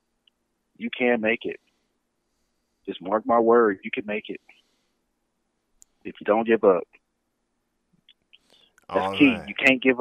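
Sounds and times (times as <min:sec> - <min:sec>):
faint soft sounds: 0:00.0 - 0:10.0
man speaking: 0:00.8 - 0:01.6, 0:02.9 - 0:04.4, 0:06.1 - 0:06.8, 0:08.9 - 0:10.0.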